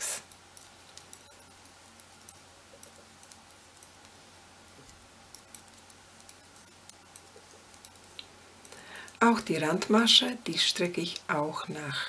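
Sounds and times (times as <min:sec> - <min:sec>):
knitting needles clicking: 0:00.2 - 0:11.5.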